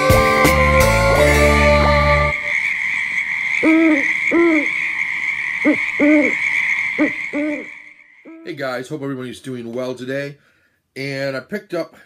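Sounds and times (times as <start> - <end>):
spooky music: 0.0 - 2.6
high-pitched background drone: 0.0 - 5.0, 5.6 - 8.6
owl hooting: 1.8 - 8.6.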